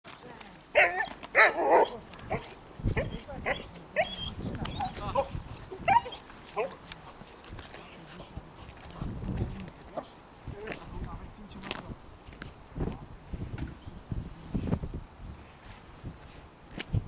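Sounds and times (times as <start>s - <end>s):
dog barking: 0.8s - 4.1s.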